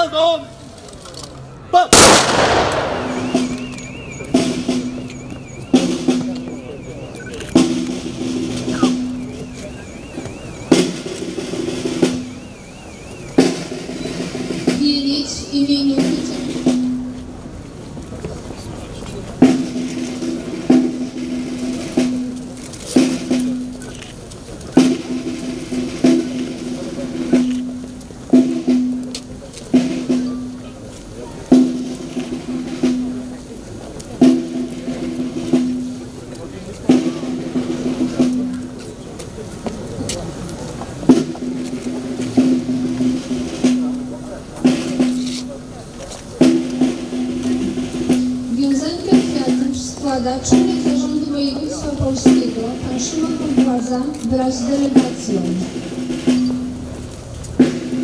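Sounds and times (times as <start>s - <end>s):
snare drum roll: 1.9s - 5.0s, 41.0s - 45.6s.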